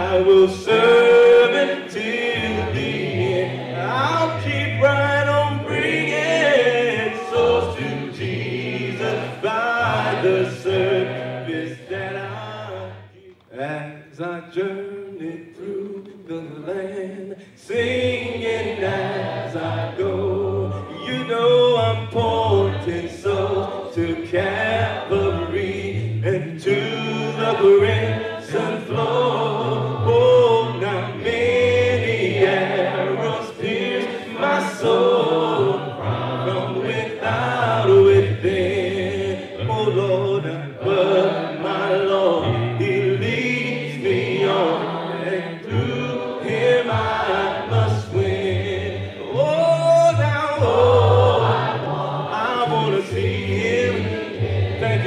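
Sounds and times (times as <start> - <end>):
choir singing a cappella: 0.0 - 55.0
man singing lead: 3.9 - 8.1, 20.0 - 32.2.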